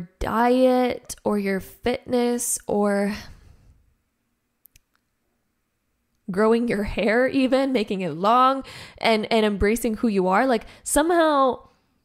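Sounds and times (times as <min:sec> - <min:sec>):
woman speaking: 0:00.0 - 0:03.4, 0:06.3 - 0:11.7.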